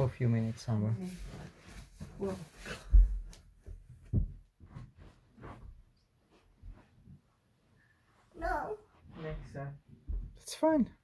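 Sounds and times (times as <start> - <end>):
faint shuffling: 0.0 - 10.8.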